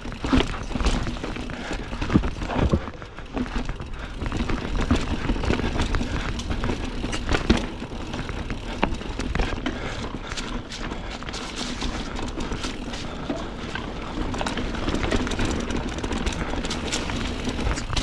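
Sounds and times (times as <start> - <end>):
bike rattling over rocks: 0.0 - 18.0
bike tyres on rock and dirt: 0.0 - 18.0.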